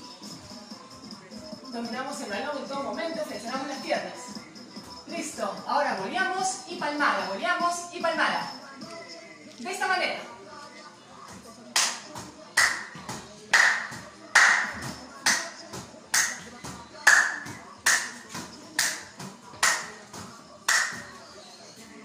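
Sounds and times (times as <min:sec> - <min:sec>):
hand clap: 0:11.8 - 0:15.5, 0:16.1 - 0:19.0, 0:19.6 - 0:20.0, 0:20.6 - 0:21.1.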